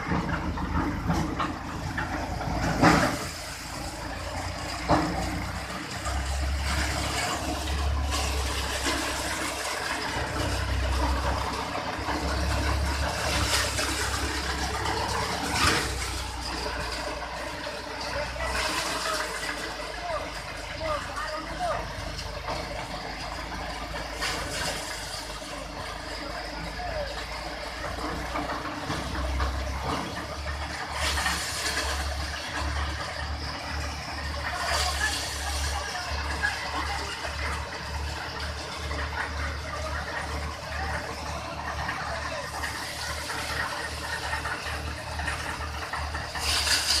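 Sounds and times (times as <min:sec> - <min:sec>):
thresher mechanical rattle: 0:00.0 - 0:47.0
hiss: 0:46.4 - 0:47.0.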